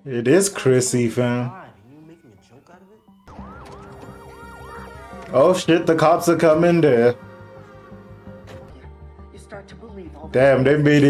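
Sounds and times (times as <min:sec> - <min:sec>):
police siren: 0:02.0 - 0:08.4.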